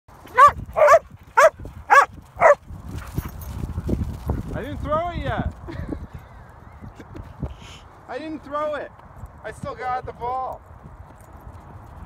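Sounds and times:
paws pattering on snow: 0.2s - 6.2s
dog barking: 0.3s - 2.6s.

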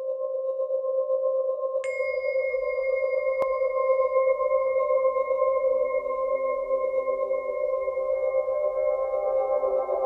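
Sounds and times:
singing bowls ringing: 1.8s - 10.0s.

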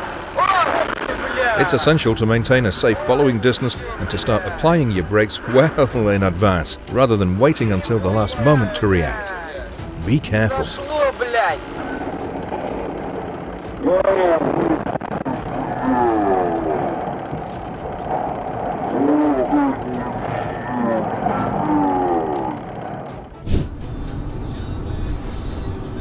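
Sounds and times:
background music: 0.0s - 26.0s
people shouting: 13.8s - 17.2s, 18.9s - 23.0s.

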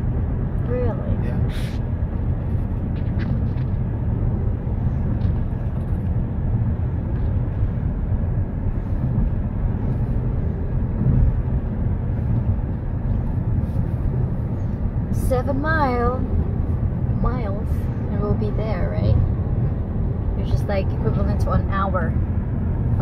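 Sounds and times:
car cabin road and engine noise: 0.0s - 23.0s.

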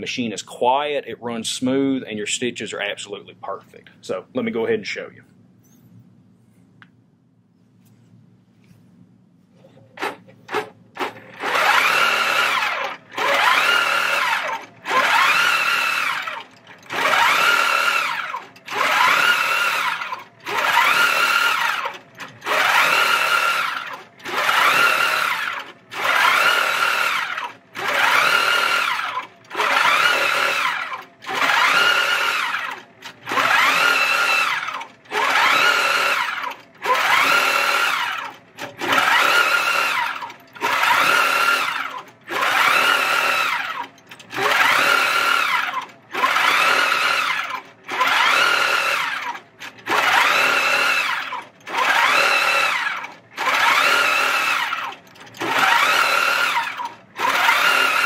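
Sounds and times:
quilting machine stitching: 9.8s - 58.0s.

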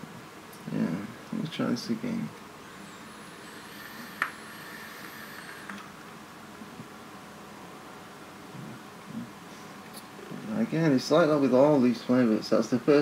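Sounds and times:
low steady hiss: 0.0s - 13.0s.

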